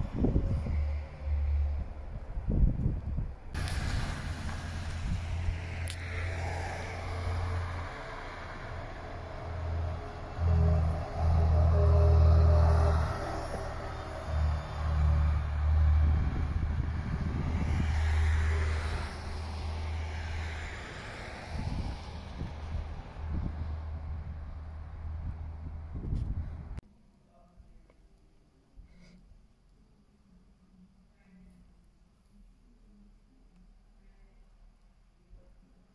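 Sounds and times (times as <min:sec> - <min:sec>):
bus driving past: 0:00.0 - 0:26.8
drivetrain whine: 0:00.0 - 0:26.8
wind rumble on microphone: 0:00.0 - 0:26.8.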